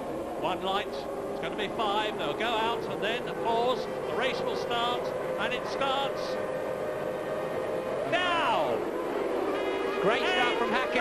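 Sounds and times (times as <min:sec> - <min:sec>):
racing car engines at high revs: 0:00.0 - 0:11.0.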